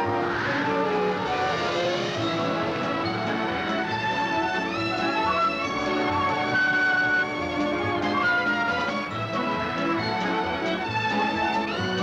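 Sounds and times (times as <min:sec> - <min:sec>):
orchestral film music: 0:00.0 - 0:12.0.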